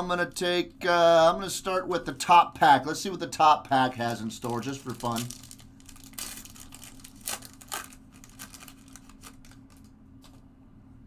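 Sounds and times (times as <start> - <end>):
foil wrapper tearing and crinkling: 4.0 - 10.4.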